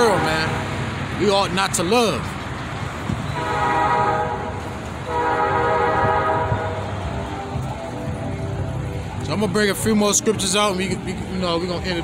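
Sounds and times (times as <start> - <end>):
passing traffic: 0.0 - 12.0
vehicle horn honking: 3.3 - 7.0.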